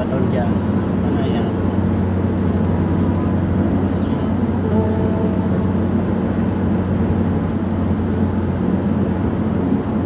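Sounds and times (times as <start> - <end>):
car engine hum: 0.0 - 10.0.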